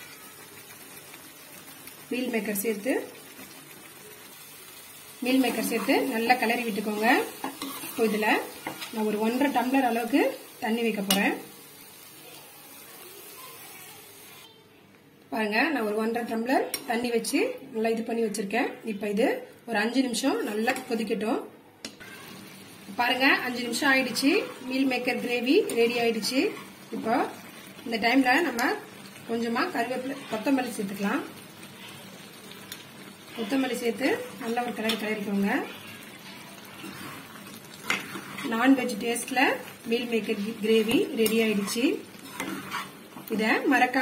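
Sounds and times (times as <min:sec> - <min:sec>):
food sizzling in a pan: 0:00.0 - 0:14.6, 0:21.9 - 0:44.0.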